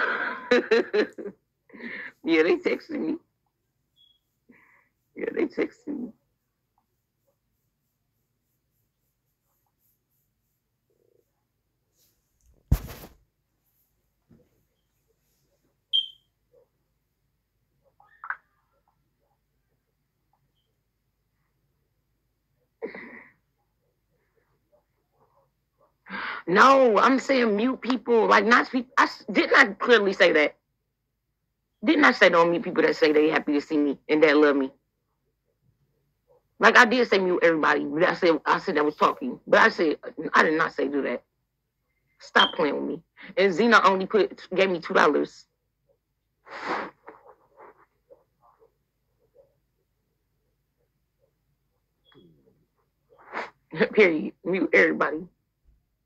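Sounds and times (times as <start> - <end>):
faint soft sounds: 45.4 - 53.3.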